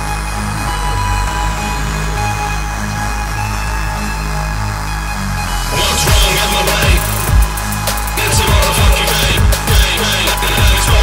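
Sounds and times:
high synth tone sliding down: 0:00.0 - 0:11.0
low synth bass notes: 0:00.0 - 0:11.0
steady higher synth tones: 0:00.0 - 0:11.0.

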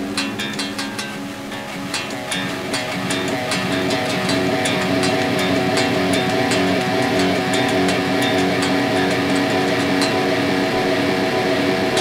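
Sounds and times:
electric guitar delay drone: 0:00.0 - 0:12.0.

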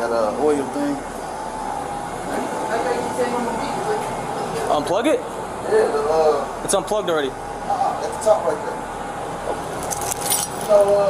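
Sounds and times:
small metal pieces jingling: 0:09.8 - 0:10.9.

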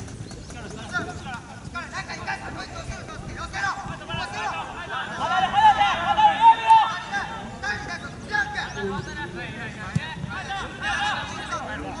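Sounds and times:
players shouting: 0:03.4 - 0:12.0.

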